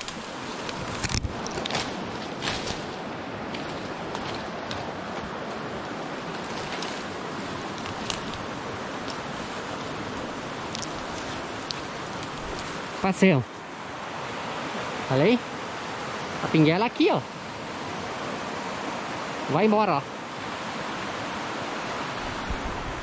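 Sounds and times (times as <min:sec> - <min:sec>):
footsteps: 0:00.0 - 0:13.1
brush snapping and rustling: 0:00.0 - 0:13.2
river water rushing: 0:00.0 - 0:23.0.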